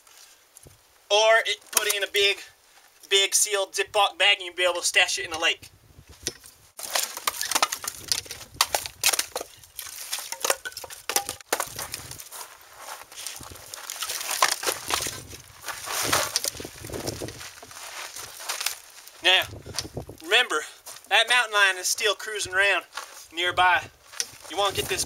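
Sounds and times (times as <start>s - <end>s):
wooden logs knocking and scraping: 1.6s - 2.0s, 6.1s - 12.4s, 13.2s - 18.9s, 24.0s - 25.0s.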